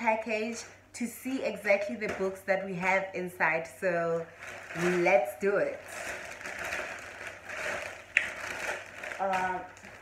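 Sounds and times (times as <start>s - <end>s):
plastic mailer bag crinkling: 3.6s - 10.0s.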